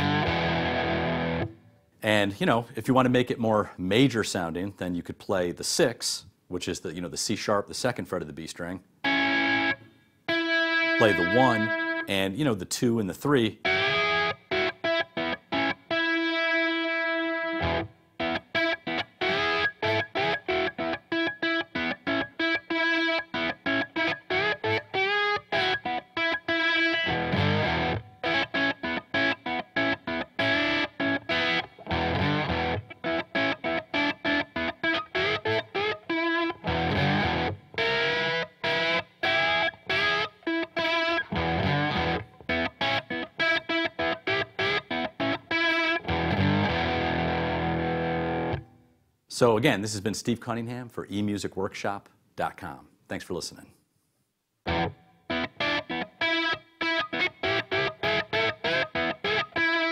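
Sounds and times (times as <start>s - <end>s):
electric lap steel guitar: 0.0s - 1.7s, 9.0s - 12.1s, 13.6s - 48.8s, 54.6s - 59.9s.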